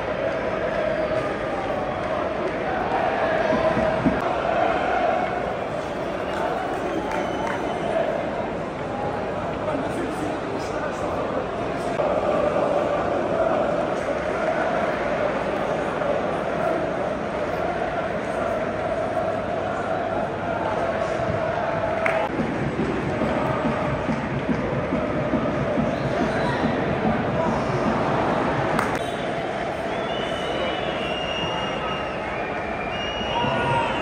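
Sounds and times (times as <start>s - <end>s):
crowd noise: 0.0s - 34.0s
stadium crowd chanting: 0.0s - 34.0s.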